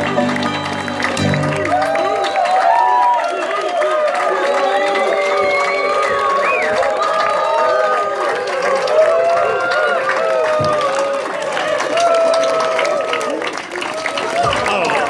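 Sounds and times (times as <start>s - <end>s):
crowd cheering and whooping: 0.0s - 15.0s
hand clapping: 0.0s - 15.0s.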